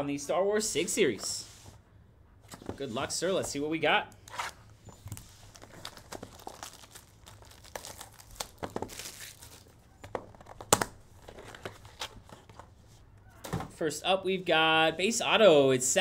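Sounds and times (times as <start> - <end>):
shrink wrap crackling and rustling: 4.4 - 12.6.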